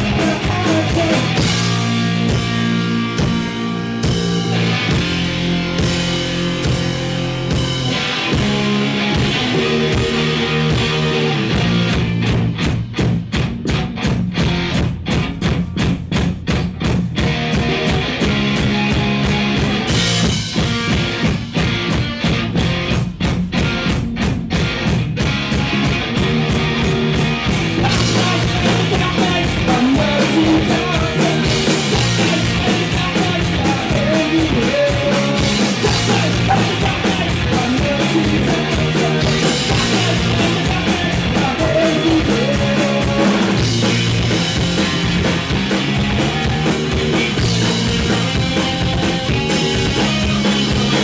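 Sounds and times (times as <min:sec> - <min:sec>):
drum kit: 0:00.0 - 0:51.0
electric guitars: 0:00.0 - 0:51.0.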